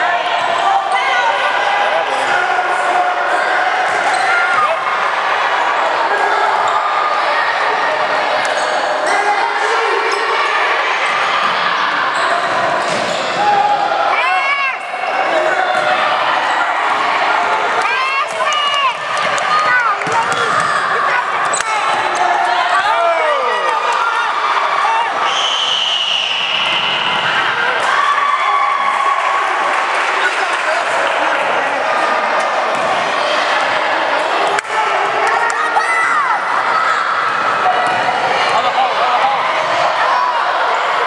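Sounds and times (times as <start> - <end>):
spectators chattering and shouting: 0.0 - 41.0
basketball bouncing on wooden court: 20.0 - 20.8.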